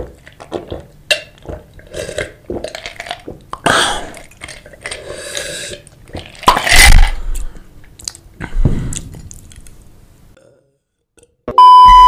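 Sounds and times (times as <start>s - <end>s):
person gulping a drink: 0.0s - 9.8s.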